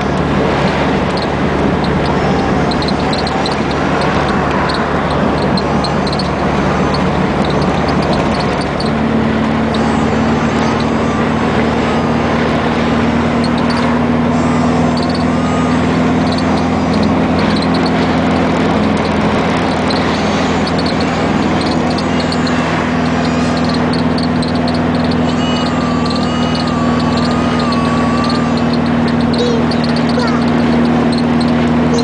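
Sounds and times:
car engine hum: 0:00.0 - 0:32.0
steady engine tone: 0:00.0 - 0:32.0
wind and road noise: 0:00.0 - 0:32.0.

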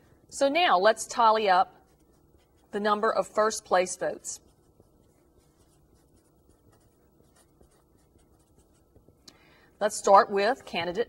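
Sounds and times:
marker writing on paper: 0:04.4 - 0:09.2.

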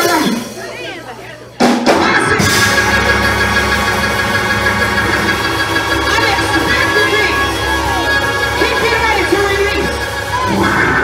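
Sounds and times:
church band music: 0:00.0 - 0:11.0
sustained organ chords: 0:02.3 - 0:11.0.

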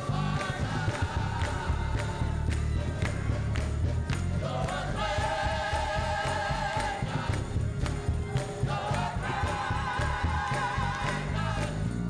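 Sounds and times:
women singing gospel: 0:00.0 - 0:03.1, 0:04.3 - 0:12.0
band with heavy bass: 0:00.0 - 0:12.0
hand claps: 0:00.0 - 0:12.0.

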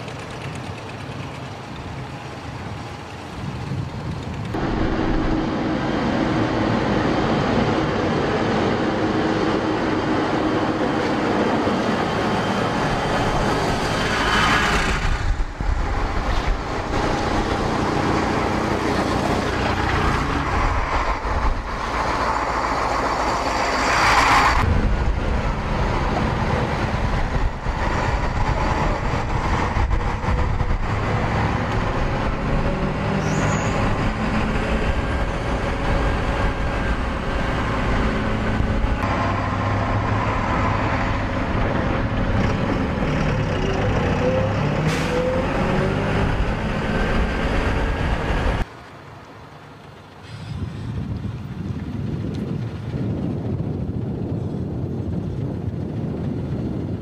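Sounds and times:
loud vehicle rush: 0:00.0 - 0:57.0
road noise: 0:00.0 - 0:57.0
vehicle engines droning: 0:00.0 - 0:57.0.

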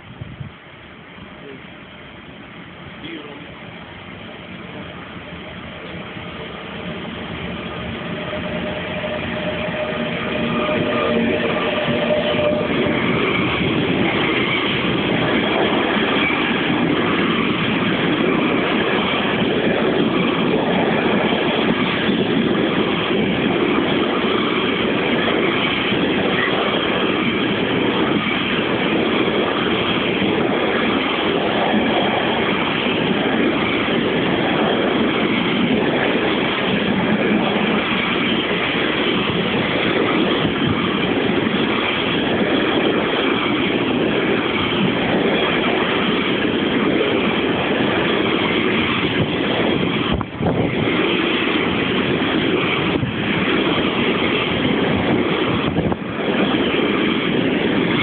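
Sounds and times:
electric locomotive passing: 0:00.6 - 0:58.0
train wheels running on rails: 0:00.9 - 0:58.0.

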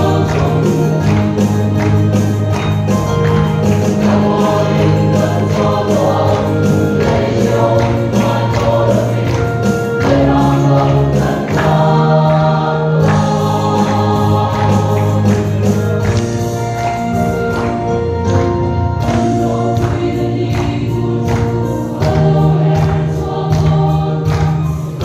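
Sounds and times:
group singing gospel: 0:00.0 - 0:17.7, 0:19.0 - 0:25.0.

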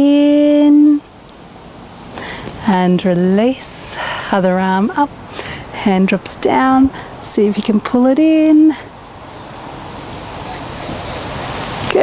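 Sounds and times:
wind gusting through trees: 0:00.0 - 0:12.0
high bird chirp: 0:10.4 - 0:11.2.

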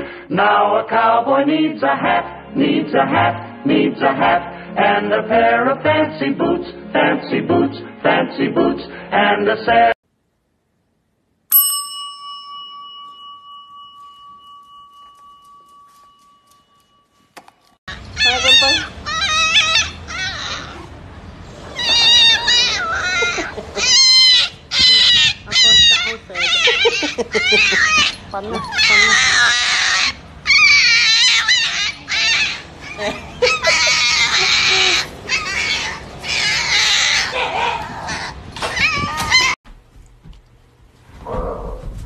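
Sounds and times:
puppy squealing and yelping: 0:17.9 - 0:39.6.

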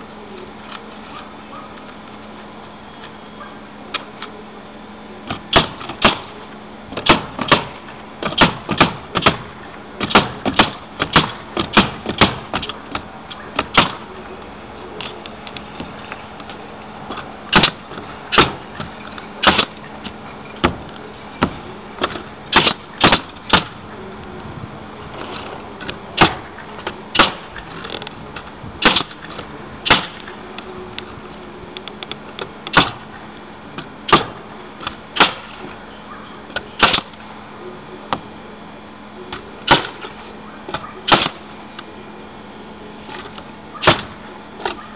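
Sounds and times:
nail gun shots: 0:05.5 - 0:06.3, 0:07.0 - 0:12.7, 0:13.6 - 0:14.0, 0:17.5 - 0:18.6, 0:19.4 - 0:19.7, 0:22.0 - 0:23.8, 0:26.2 - 0:26.4, 0:27.1 - 0:27.5, 0:28.8 - 0:29.2, 0:29.8 - 0:30.2, 0:32.7 - 0:33.0, 0:34.1 - 0:35.6, 0:36.8 - 0:37.1, 0:39.7 - 0:40.1, 0:40.7 - 0:41.4, 0:43.8 - 0:44.2.

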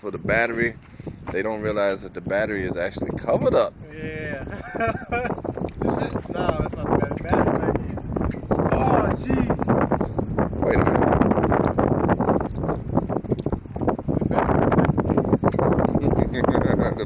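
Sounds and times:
people talking indistinctly: 0:00.0 - 0:09.8, 0:10.6 - 0:11.2
wind buffeting microphone: 0:00.0 - 0:17.0.

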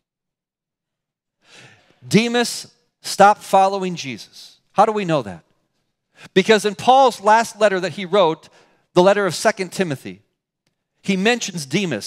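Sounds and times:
man breathing in: 0:01.4 - 0:02.0.

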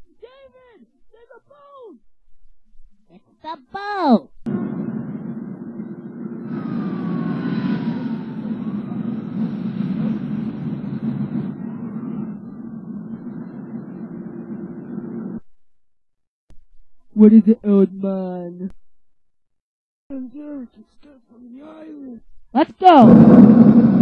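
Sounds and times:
faint gliding tones: 0:04.5 - 0:15.4
traffic rumble: 0:04.5 - 0:15.4.

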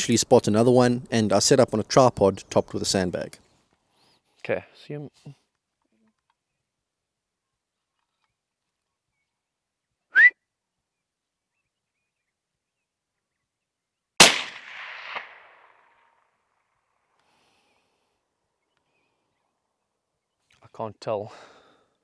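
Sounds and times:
short rising whistle: 0:10.1 - 0:10.4
fainter crack: 0:14.2 - 0:16.2
rifle shot: 0:14.2 - 0:16.3.

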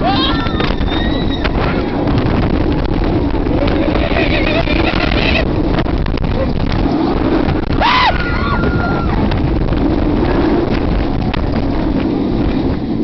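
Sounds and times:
heavy wind on microphone: 0:00.0 - 0:13.0.

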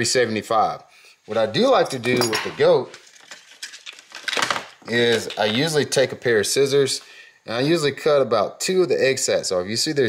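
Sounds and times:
plastic baits clicking and rustling: 0:02.9 - 0:05.8.

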